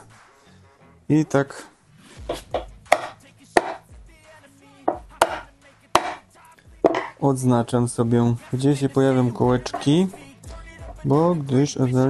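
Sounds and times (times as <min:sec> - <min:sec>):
mallet knocking on panel: 0:02.3 - 0:03.8, 0:04.9 - 0:05.4, 0:06.0 - 0:06.2, 0:06.8 - 0:07.2.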